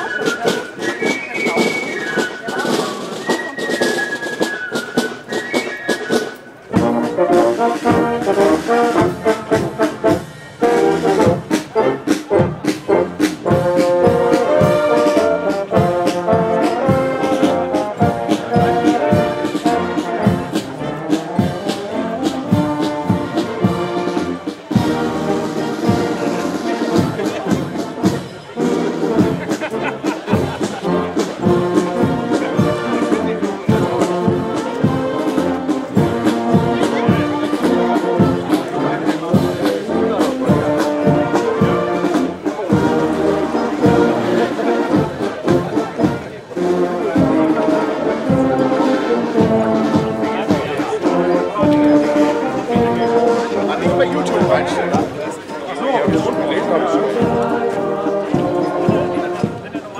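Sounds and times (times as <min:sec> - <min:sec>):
brass band playing a march: 0:00.0 - 0:59.9.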